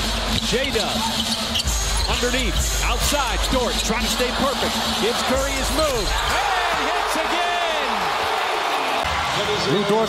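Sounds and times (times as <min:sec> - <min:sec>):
arena crowd cheering: 0:03.8 - 0:10.0.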